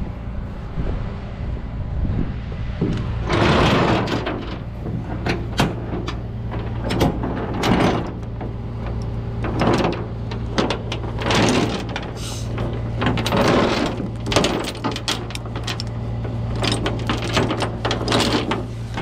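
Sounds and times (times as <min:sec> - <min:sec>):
steady low hum: 0:00.0 - 0:19.0
chain and hooks clanking on steel: 0:02.8 - 0:19.0.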